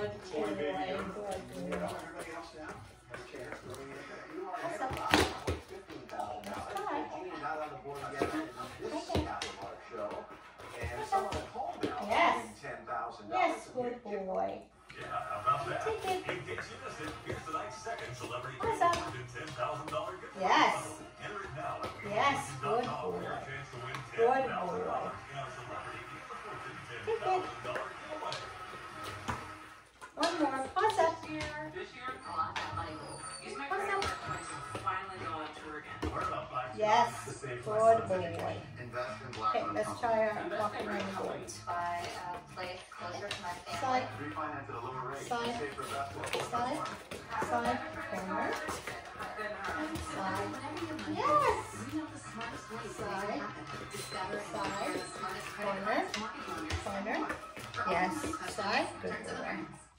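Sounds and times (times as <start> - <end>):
speech: 0.0 - 28.4, 30.2 - 59.8
television game show: 0.0 - 59.9.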